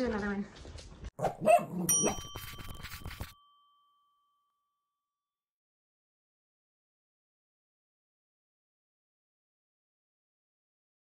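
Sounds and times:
bright bell-like chime: 0:01.9 - 0:05.2.

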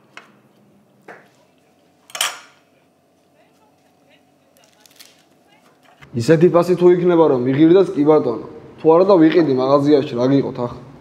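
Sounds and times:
tableware clinking: 0:02.1 - 0:02.6.

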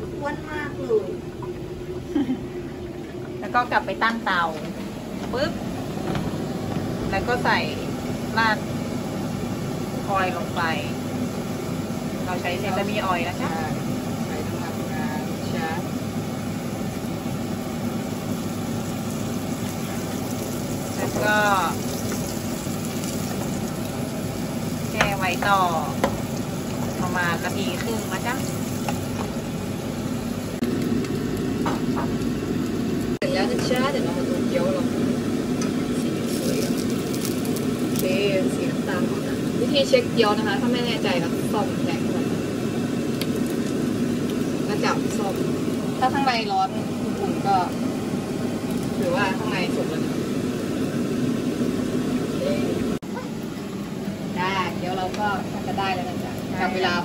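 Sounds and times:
dumplings sizzling in frying pan: 0:05.0 - 0:57.0.

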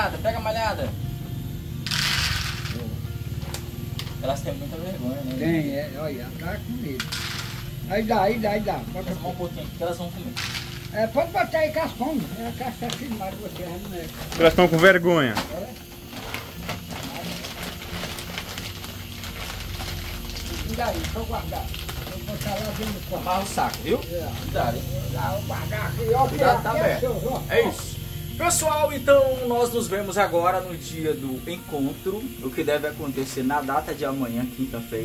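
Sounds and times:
plastic sack crinkling: 0:12.8 - 0:15.6, 0:16.2 - 0:24.5.

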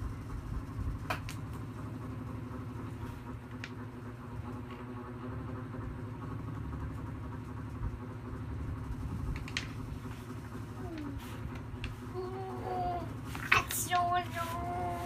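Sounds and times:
low mechanical hum: 0:00.0 - 0:15.0.

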